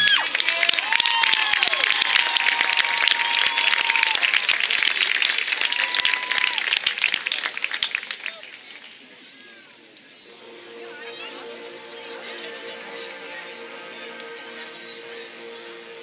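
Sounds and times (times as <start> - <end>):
audience clapping and cheering: 0.0 - 9.2.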